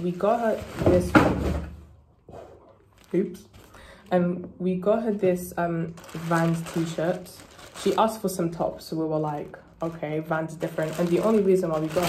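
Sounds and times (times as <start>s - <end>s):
plastic packaging rustle: 0.0s - 1.6s, 2.8s - 4.2s, 5.1s - 12.0s.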